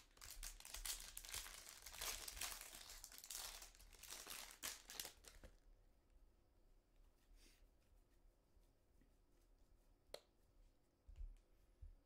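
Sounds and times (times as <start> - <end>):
foil card pack tearing and crinkling: 0.0 - 5.4.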